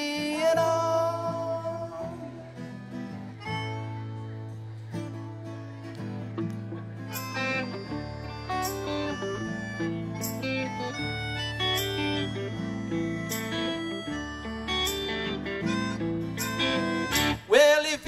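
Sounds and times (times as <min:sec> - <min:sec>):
live band instrumental: 0:06.4 - 0:17.4.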